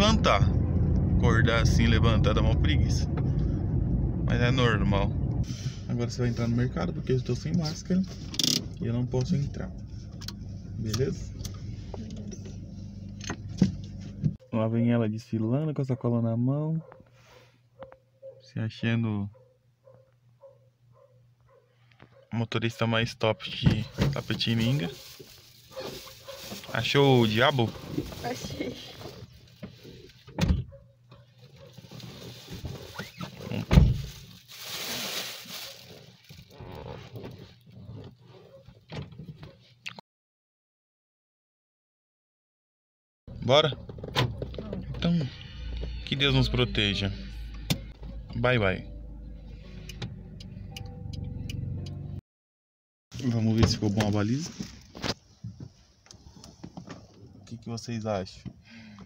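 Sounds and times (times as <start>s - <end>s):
plastic bag rustling: 24.0s - 30.2s, 31.4s - 37.3s.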